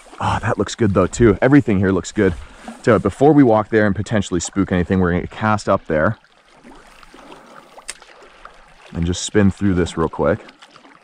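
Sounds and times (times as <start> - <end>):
creek water running: 0.0 - 11.0.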